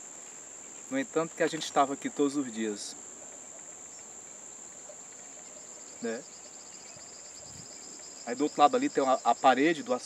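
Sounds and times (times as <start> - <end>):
faint outdoor ambience: 0.0 - 10.0
high-pitched insect drone: 1.8 - 10.0.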